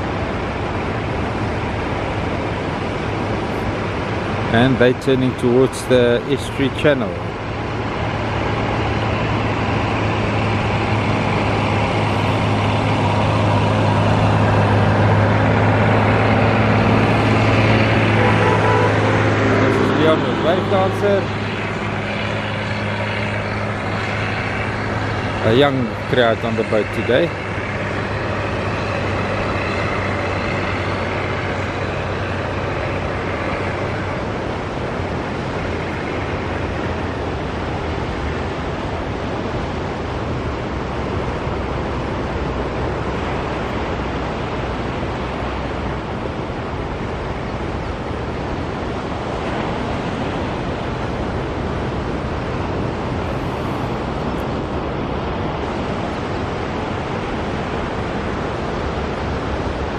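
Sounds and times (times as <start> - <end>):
engines droning: 0.0 - 59.9.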